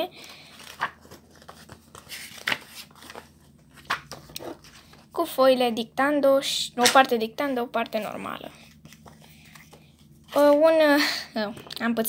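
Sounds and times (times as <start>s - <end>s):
notebook pages rustling: 0.2s - 5.2s, 8.0s - 10.7s.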